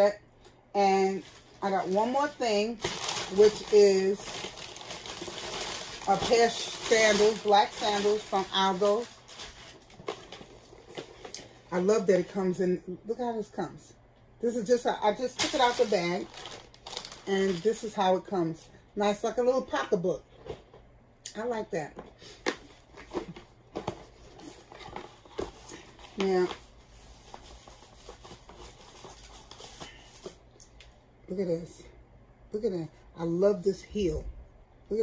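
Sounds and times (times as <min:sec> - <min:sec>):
plastic bag rustling: 0:01.0 - 0:11.6, 0:15.0 - 0:18.2, 0:22.7 - 0:30.4.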